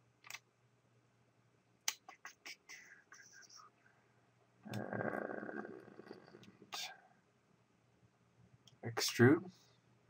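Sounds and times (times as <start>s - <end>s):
computer mouse clicks: 0.2s - 0.4s.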